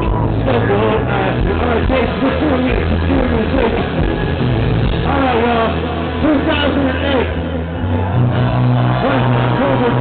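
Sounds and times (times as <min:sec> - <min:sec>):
held low bass notes: 0:00.0 - 0:10.0
live rock band playing: 0:00.0 - 0:10.0.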